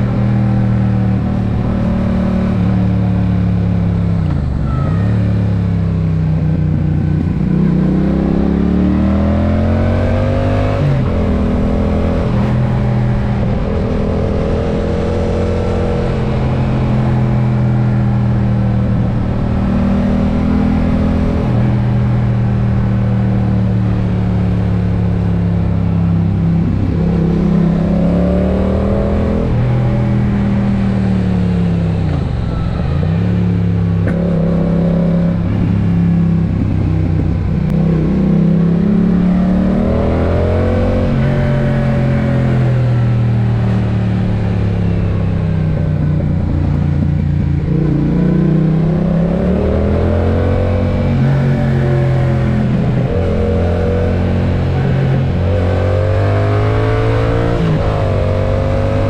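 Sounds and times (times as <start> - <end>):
motorcycle engine revving: 0.0 - 59.0
wind noise on microphone: 3.9 - 8.4, 33.8 - 58.9.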